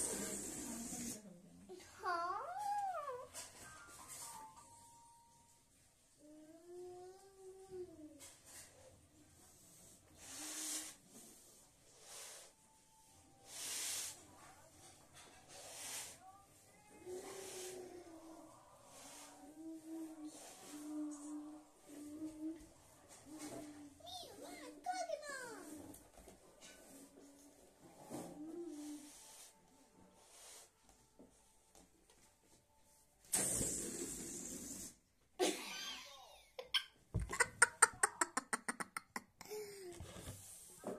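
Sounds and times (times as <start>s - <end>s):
child humming: 6.2s - 8.3s, 19.2s - 22.7s
girl laughing: 35.4s - 39.8s.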